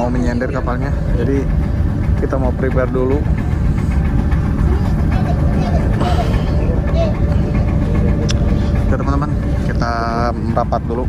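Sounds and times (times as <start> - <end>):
faint voices: 0.0 - 11.0
ferry engine rumble: 0.0 - 11.0.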